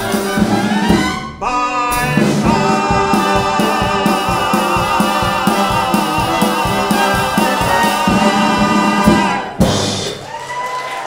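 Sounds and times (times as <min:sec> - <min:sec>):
orchestra with brass playing: 0:00.0 - 0:10.1.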